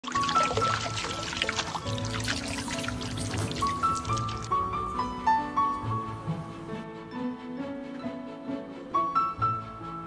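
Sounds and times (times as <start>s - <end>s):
water pouring and splashing on fabric: 0.0s - 4.7s.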